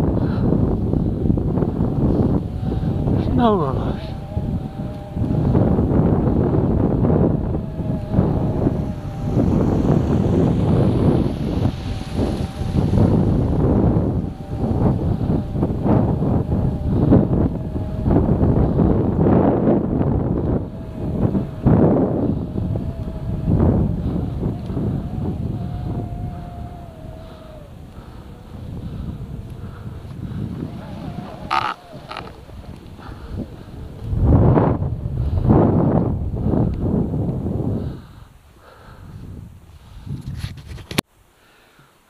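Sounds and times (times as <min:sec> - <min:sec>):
faint wavering whine: 0:00.0 - 0:38.8
wind buffeting microphone: 0:00.0 - 0:41.2.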